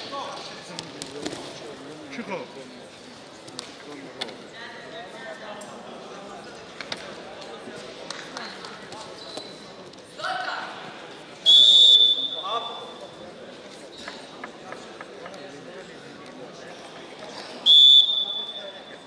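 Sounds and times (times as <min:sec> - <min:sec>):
referee's whistle blast: 0:11.5 - 0:12.9, 0:17.7 - 0:18.8.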